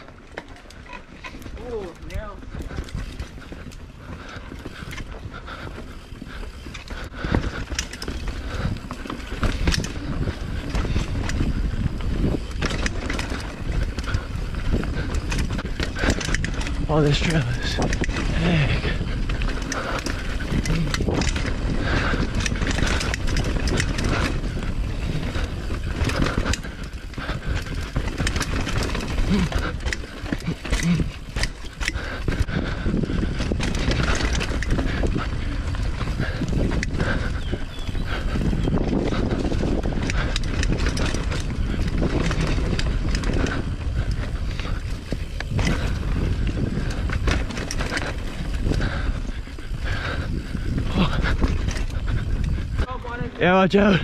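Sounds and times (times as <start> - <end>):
bike rattling over bumps: 0.0 - 54.0
bike tyres rumbling on dirt: 0.0 - 54.0.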